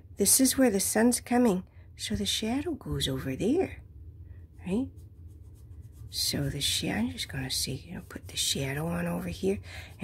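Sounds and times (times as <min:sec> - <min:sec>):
pencil scratching on paper: 0:04.7 - 0:10.0.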